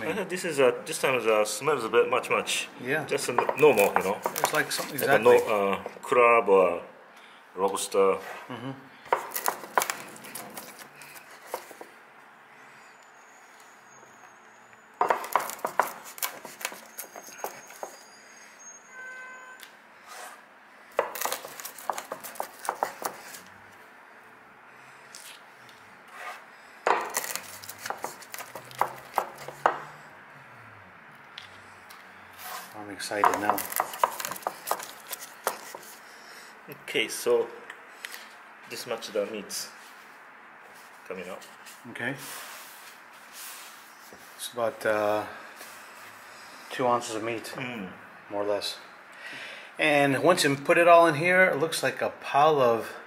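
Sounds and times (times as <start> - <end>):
rolling pin rolling on board: 15.0 - 18.0, 27.8 - 29.8.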